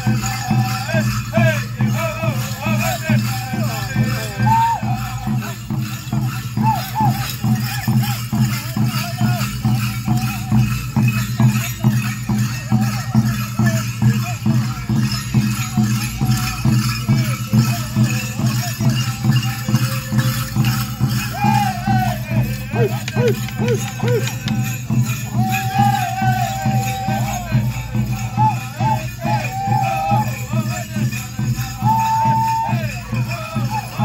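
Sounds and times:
men singing together: 0.0s - 6.0s, 20.2s - 34.0s
hand drums beating: 0.0s - 34.0s.

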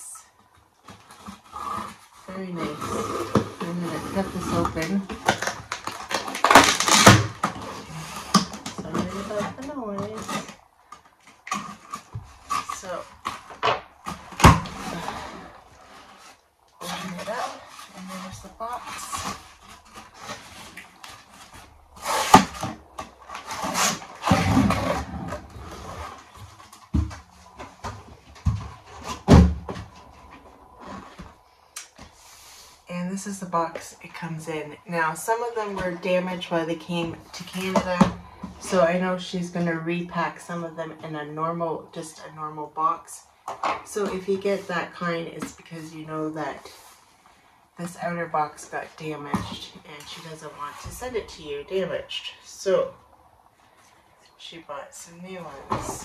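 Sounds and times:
tape peeling off: 5.2s - 8.7s, 19.1s - 26.8s.

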